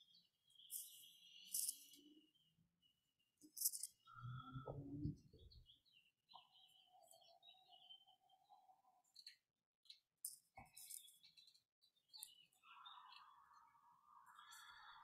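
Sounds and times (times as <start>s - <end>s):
faint high-pitched chirps: 0.0s - 15.0s.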